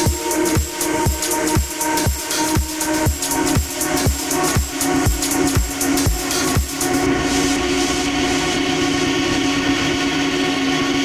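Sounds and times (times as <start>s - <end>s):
held synth chord: 0.0s - 11.0s.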